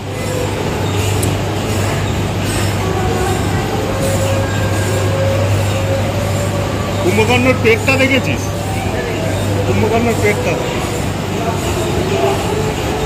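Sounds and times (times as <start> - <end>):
continuous rumbling noise: 0.0 - 13.0.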